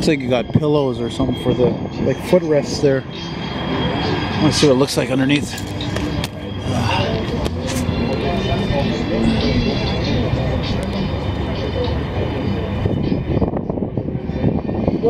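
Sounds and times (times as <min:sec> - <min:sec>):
people talking: 0:00.0 - 0:03.1, 0:04.2 - 0:15.0.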